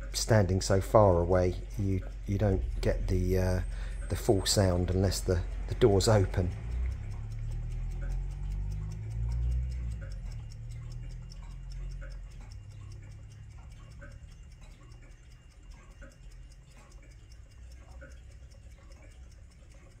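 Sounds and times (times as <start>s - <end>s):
clock ticking: 0.0s - 20.0s
low rumble: 0.7s - 13.9s.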